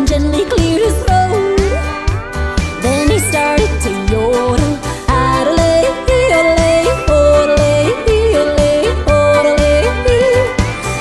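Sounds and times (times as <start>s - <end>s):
country music beat: 0.0s - 10.9s
woman yodeling: 0.8s - 10.5s.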